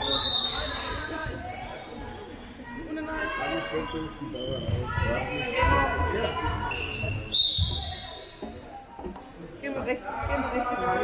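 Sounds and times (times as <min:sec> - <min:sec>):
referee's whistle blast: 0:06.8 - 0:08.3.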